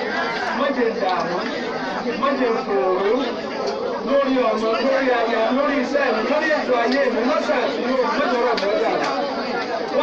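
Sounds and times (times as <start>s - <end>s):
man speaking into a microphone: 0.4s - 3.3s, 4.0s - 9.1s.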